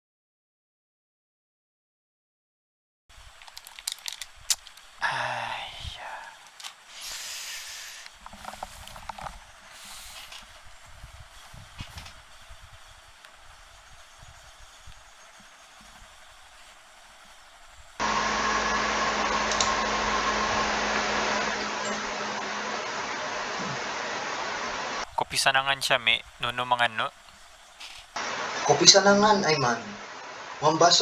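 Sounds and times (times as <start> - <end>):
faint hiss: 3.1 - 18.8, 22.7 - 31.0
low hum: 4.7 - 28.8
fan-like rushing noise: 4.8 - 31.0.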